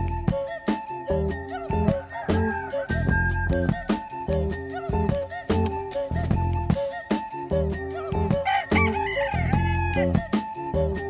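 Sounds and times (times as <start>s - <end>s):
background music with steady beat: 0.0s - 11.0s
rooster crowing: 2.0s - 3.2s, 8.4s - 10.3s.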